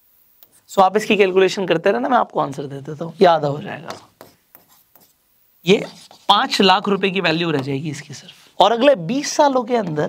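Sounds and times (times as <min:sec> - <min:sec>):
man speaking: 0:00.7 - 0:04.1, 0:05.6 - 0:10.0
stylus strokes and taps: 0:03.6 - 0:08.4.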